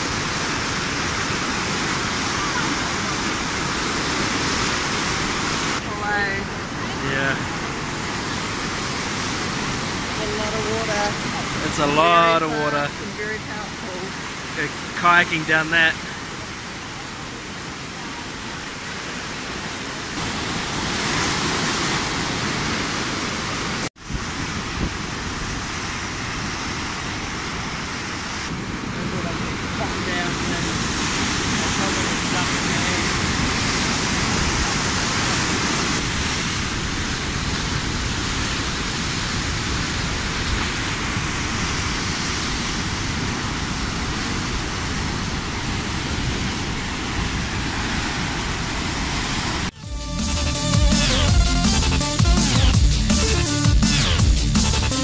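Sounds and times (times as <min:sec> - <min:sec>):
white-water rapids roaring: 0:00.0 - 0:49.8.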